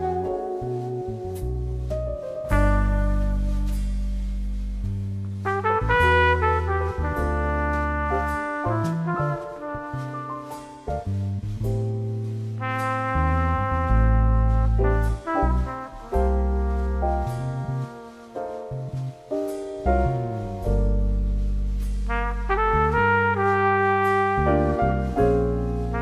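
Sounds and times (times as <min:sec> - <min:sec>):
trumpet melody: 0:00.0 - 0:04.8, 0:05.4 - 0:11.2, 0:12.5 - 0:26.0
deep held bass notes: 0:00.0 - 0:26.0.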